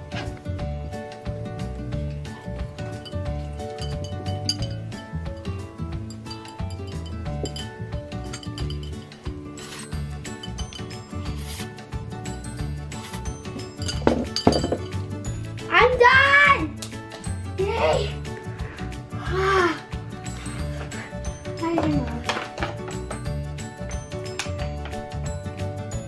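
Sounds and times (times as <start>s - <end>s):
background music with steady beat: 0.0s - 26.0s
chopsticks clinking on ceramic plate: 3.0s - 11.3s, 13.4s - 15.1s.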